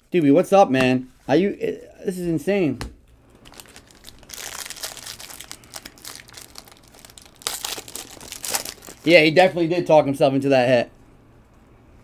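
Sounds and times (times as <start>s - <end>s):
foil wrapper crinkling and tearing: 3.3s - 9.1s.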